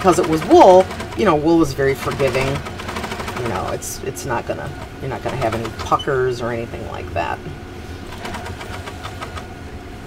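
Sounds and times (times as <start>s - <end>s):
sewing machine stitching: 0.0s - 3.8s, 4.7s - 6.0s, 8.0s - 9.5s.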